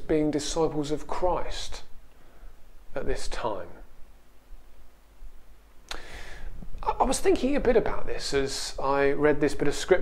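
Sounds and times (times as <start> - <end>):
sharp intake of breath: 5.9 - 6.6.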